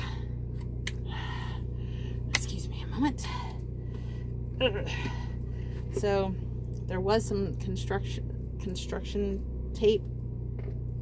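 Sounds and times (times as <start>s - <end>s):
steady low hum: 0.0s - 11.0s
breath of effort: 1.0s - 2.3s
woman grunting: 4.6s - 5.4s.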